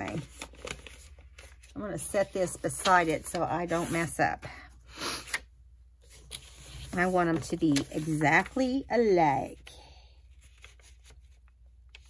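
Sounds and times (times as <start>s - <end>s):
paper rustling: 0.0s - 4.1s, 6.0s - 8.8s, 10.3s - 12.0s.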